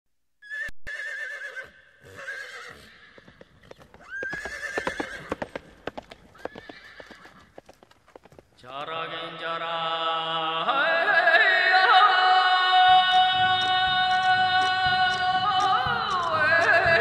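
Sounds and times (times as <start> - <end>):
horse whinnying: 0.4 - 7.6
hooves clopping: 2.1 - 9.9, 12.0 - 17.0.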